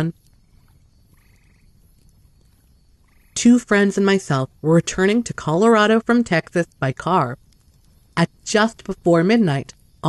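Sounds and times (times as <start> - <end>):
pulsed croaking call: 0.0 - 10.0
narrator speaking: 3.4 - 7.4, 8.2 - 9.7.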